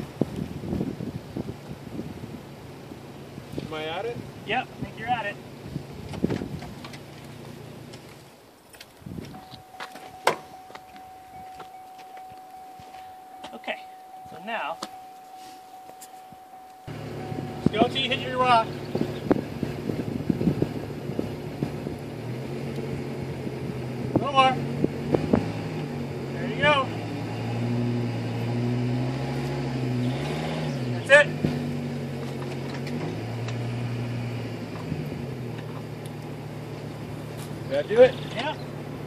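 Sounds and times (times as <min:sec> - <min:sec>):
vehicle engine running: 0:00.0 - 0:08.3, 0:09.3 - 0:39.0.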